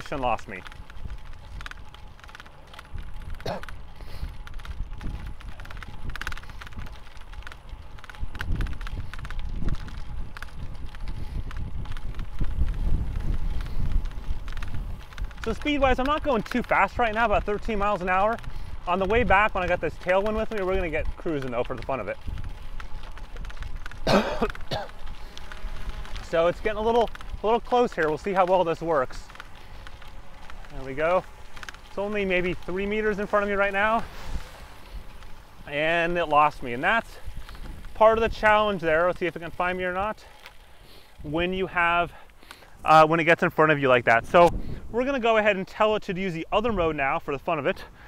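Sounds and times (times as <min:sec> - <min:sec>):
sharp clicks: 0:00.0 - 0:43.0
wind and road rumble: 0:00.0 - 0:48.0.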